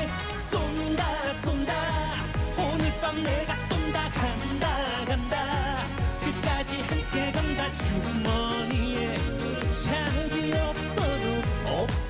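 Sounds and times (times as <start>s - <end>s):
dance backing track: 0.0s - 12.0s
man singing upbeat song: 0.0s - 12.0s
steady kick-drum beat: 0.0s - 12.0s.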